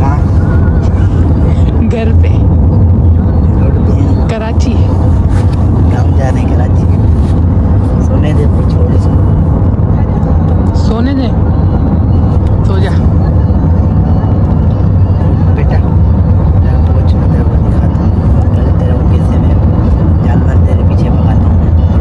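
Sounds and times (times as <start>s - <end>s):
car engine rumble: 0.0s - 22.0s
road noise: 0.0s - 22.0s.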